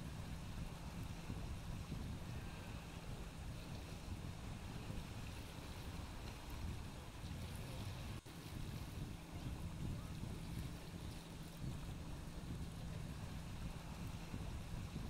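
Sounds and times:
wind on microphone: 0.0 - 15.0.

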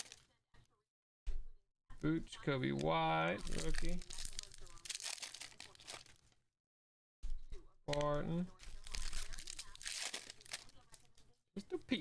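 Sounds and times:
foil wrapper tearing and crinkling: 0.0 - 0.2, 3.4 - 6.4, 8.5 - 11.2.

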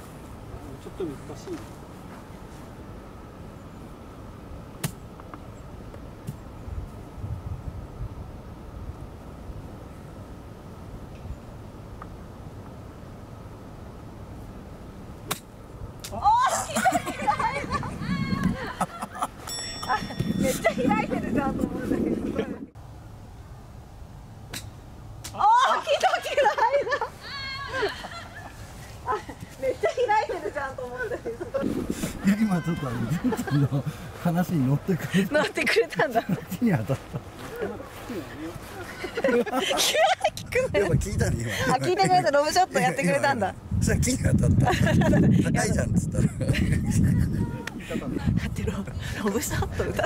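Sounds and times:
drawn-out exclamation: 32.0 - 33.9.

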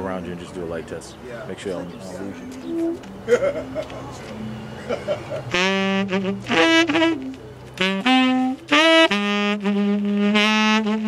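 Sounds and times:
tenor saxophone riff: 2.0 - 3.2, 5.3 - 11.0.

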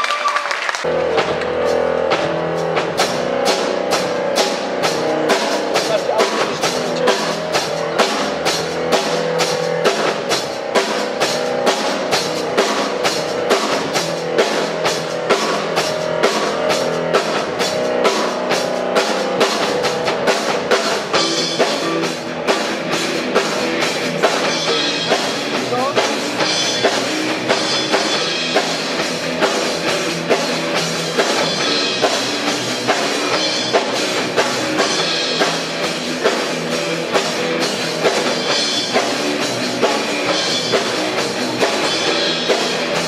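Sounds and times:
bass guitar: 0.8 - 43.0
drum kit beat: 0.8 - 43.0
electric guitars: 0.8 - 43.0.

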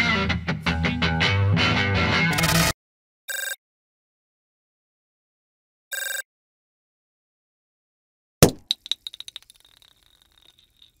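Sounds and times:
small hard object bouncing and clinking: 8.4 - 11.0.

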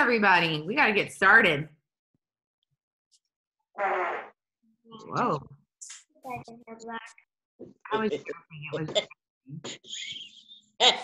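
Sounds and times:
buzzy mouth noise: 3.8 - 4.4.

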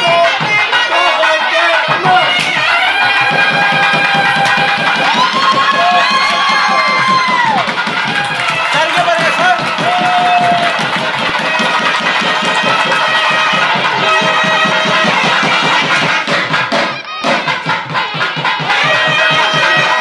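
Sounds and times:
reed pipe melody: 0.0 - 20.0
fast dense drumming: 1.8 - 20.0.

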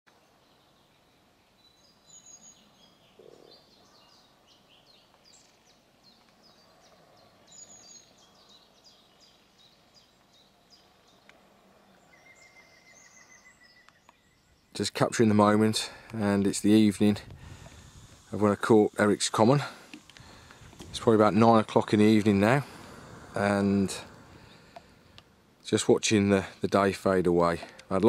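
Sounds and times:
birds chirping: 0.1 - 28.0
bird trill: 11.9 - 14.8.

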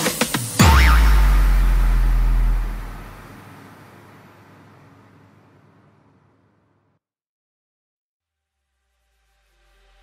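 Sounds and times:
deep sub-bass note: 0.6 - 4.1.

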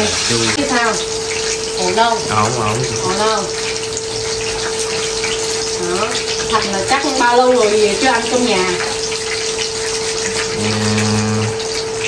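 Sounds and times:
vegetables rinsed by hand: 0.0 - 12.0.

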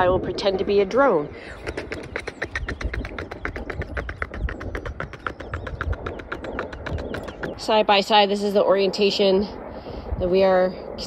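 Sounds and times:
wind buffeting microphone: 0.0 - 11.0
rapid small clicks: 1.7 - 7.6.

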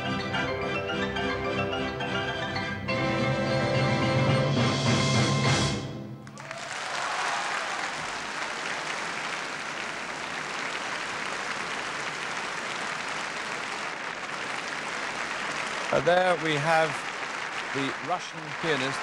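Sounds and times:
audience applauding: 6.2 - 19.0.

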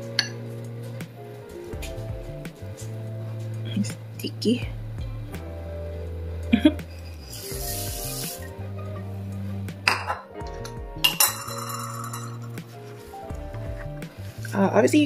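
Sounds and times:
background music: 0.0 - 15.0
spoon clinking against glass bowl: 11.0 - 12.5.

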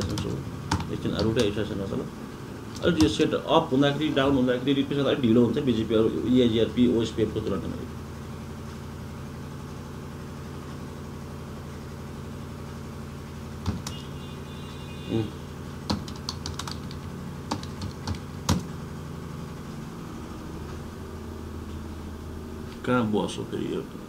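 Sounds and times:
computer keyboard keystrokes: 0.0 - 1.6, 15.9 - 18.7
steady low hum: 0.0 - 24.0.

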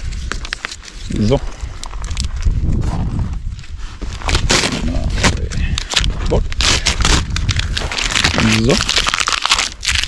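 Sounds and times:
paper sticker tearing: 4.2 - 10.0.

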